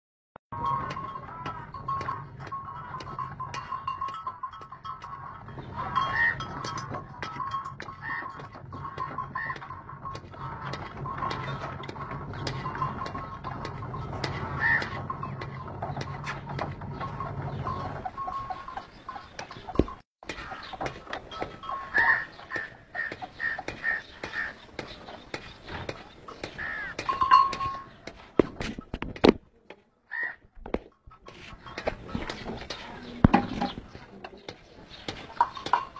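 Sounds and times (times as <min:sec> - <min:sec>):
rapid clicking and knocking: 0:00.6 - 0:29.4
stone mill droning: 0:00.6 - 0:29.4, 0:30.7 - 0:35.9.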